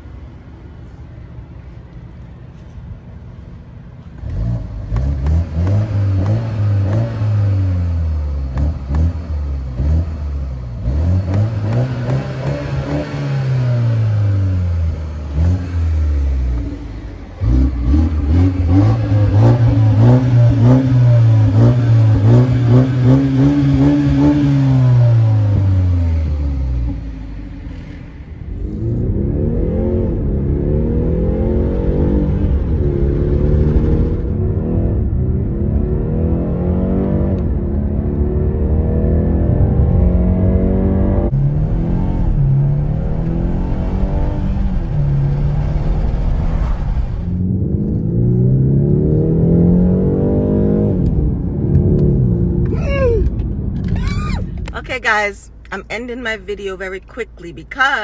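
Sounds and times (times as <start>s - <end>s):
car engine revving: 4.2s - 58.0s.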